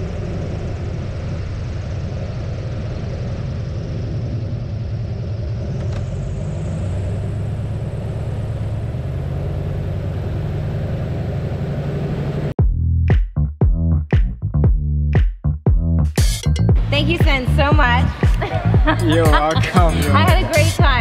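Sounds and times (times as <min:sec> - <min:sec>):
radial aircraft engine running: 0:00.0 - 0:12.6, 0:16.8 - 0:21.0.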